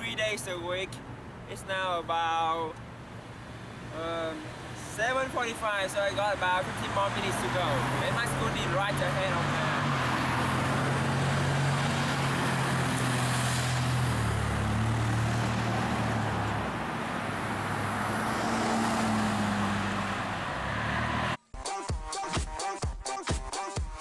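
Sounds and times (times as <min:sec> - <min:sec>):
car engines humming: 0:00.0 - 0:21.4.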